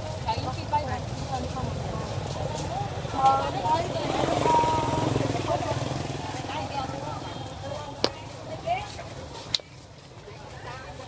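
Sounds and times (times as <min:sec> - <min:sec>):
people talking: 0:00.0 - 0:11.0
motorbike engine running: 0:03.2 - 0:08.1.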